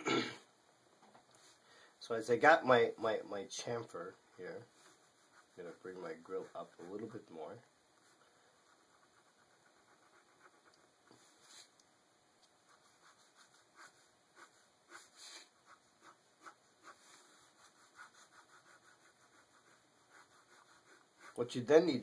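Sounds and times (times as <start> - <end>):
pen scratching on paper: 4.7 - 7.4, 8.0 - 11.7, 12.6 - 21.4.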